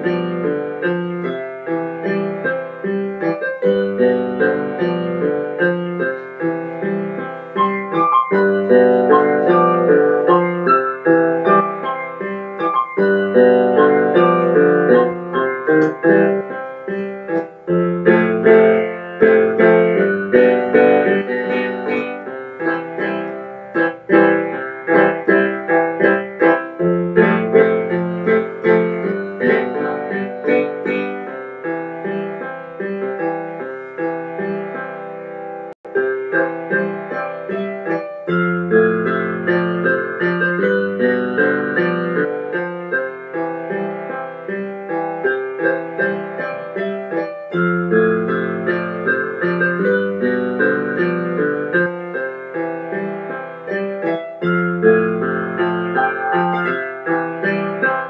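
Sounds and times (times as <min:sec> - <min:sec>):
piano chords over bass line: 0:00.0 - 0:58.0.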